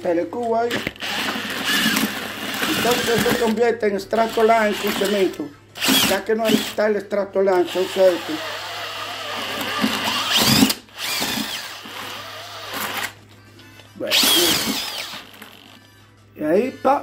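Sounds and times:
electric drill mixing cement: 0.7 - 3.6, 4.2 - 6.8, 7.6 - 13.2, 14.1 - 15.7.

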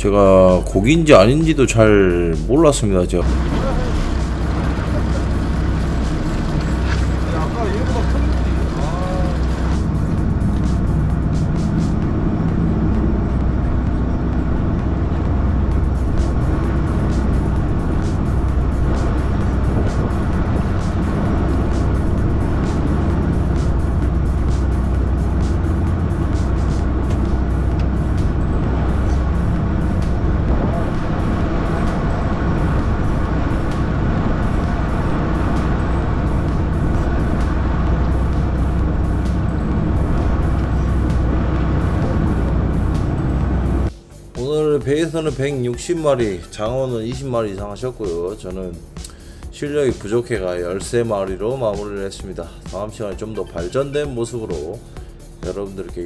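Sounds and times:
background music: 0.0 - 56.0
boat engine droning: 0.0 - 56.0.

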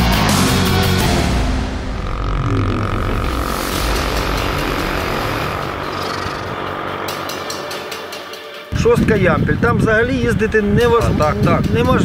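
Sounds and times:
vehicle engine drone: 0.1 - 10.9.

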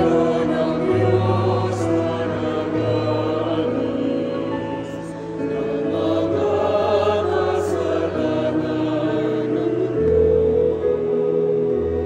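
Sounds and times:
choir singing slow sacred piece: 0.0 - 12.0.

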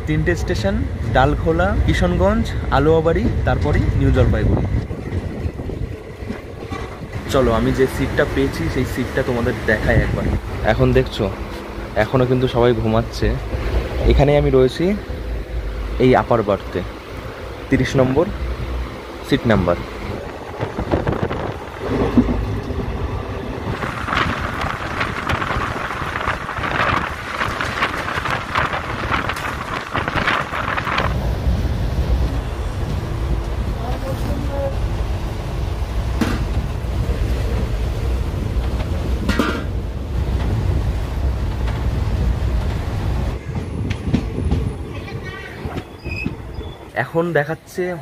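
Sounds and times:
train rattling and rumbling: 0.0 - 48.0.

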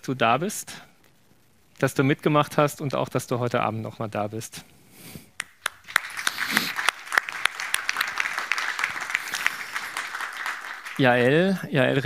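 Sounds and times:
audience applause: 5.4 - 11.7.

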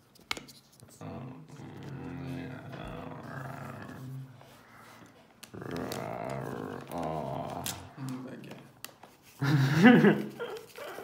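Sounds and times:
low growly voice: 1.0 - 8.3.

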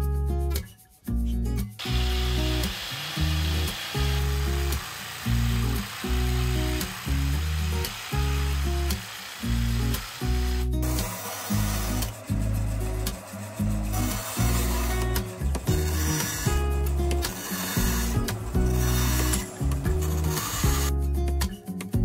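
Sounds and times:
background music with bass line: 0.0 - 11.0, 11.6 - 22.0
bandsaw running: 1.8 - 20.9
jigsaw cutting wood: 1.8 - 20.9.

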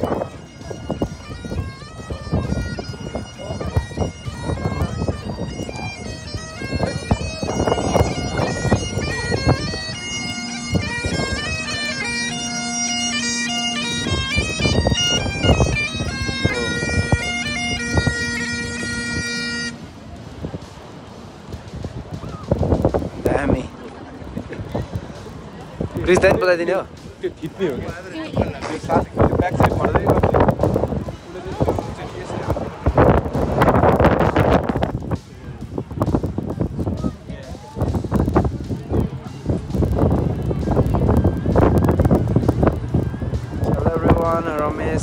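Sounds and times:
bagpipe held note with drones: 0.0 - 19.8
outdoor background noise: 0.0 - 45.0
wind buffeting microphone: 0.0 - 45.0
low thumps: 27.8 - 37.0.

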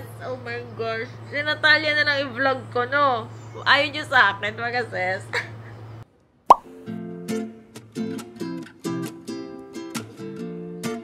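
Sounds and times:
pop with upward pitch sweep: 6.5 - 6.7
strummed acoustic guitar: 6.8 - 11.0.

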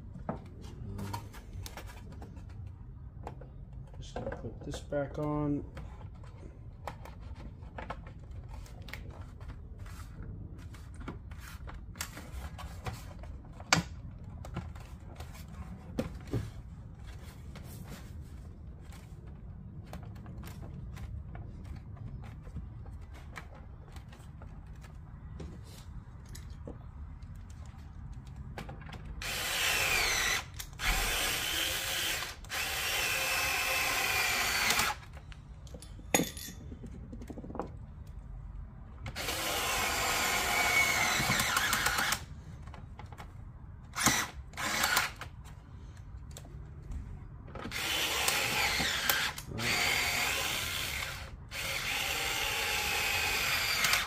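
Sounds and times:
electric screwdriver whining: 29.2 - 35.2, 39.1 - 42.3, 43.9 - 45.3, 47.6 - 54.0.

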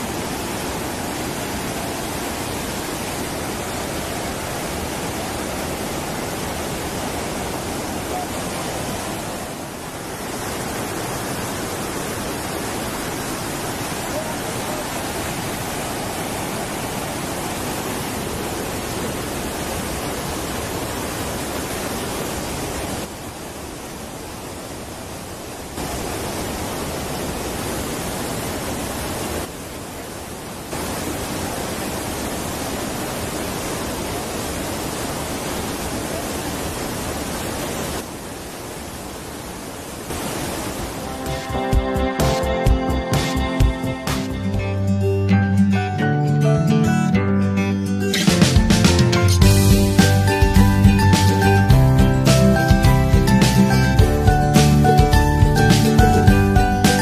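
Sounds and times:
white water rushing: 0.0 - 45.1, 48.0 - 57.0.

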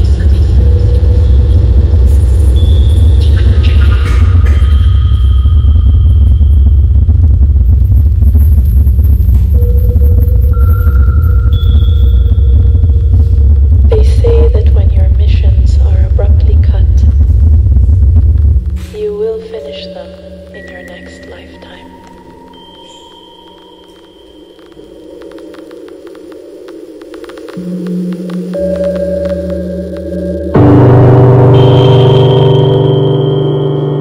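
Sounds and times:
deep steady rumble: 0.0 - 34.0
deep gong-like tone: 9.3 - 14.8, 28.5 - 34.0
held tone: 9.5 - 13.8
high clear tone: 18.8 - 24.6.

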